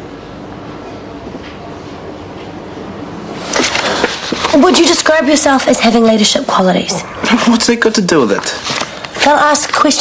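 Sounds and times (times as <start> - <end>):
steady hiss and rumble: 0.0 - 10.0.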